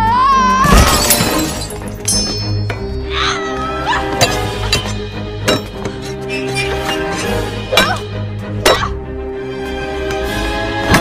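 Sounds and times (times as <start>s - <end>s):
orchestral film score: 0.0s - 11.0s.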